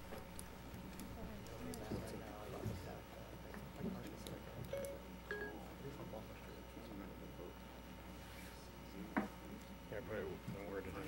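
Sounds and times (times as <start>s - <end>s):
faint room murmur: 0.0s - 11.0s.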